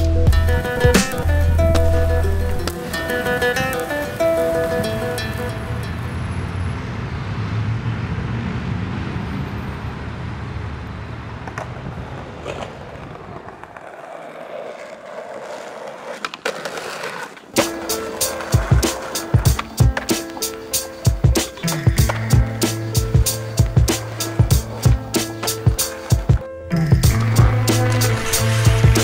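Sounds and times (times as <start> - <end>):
music with sharp regular beat: 0.0 - 2.1, 17.6 - 29.0
skateboard wheels rolling on stone: 0.0 - 6.1, 11.3 - 29.0
city traffic rumble: 0.0 - 29.0.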